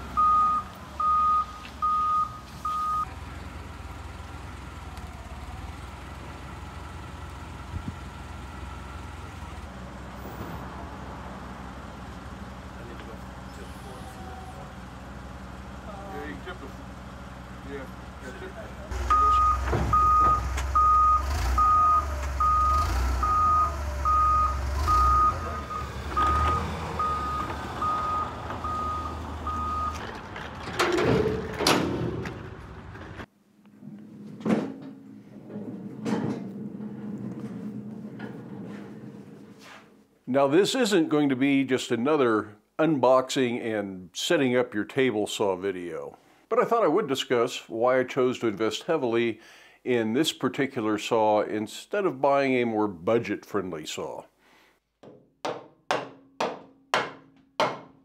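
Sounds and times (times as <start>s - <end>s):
forklift engine hum: 0.0s - 33.3s
reversing alarm beeping: 0.1s - 3.1s, 19.0s - 30.0s.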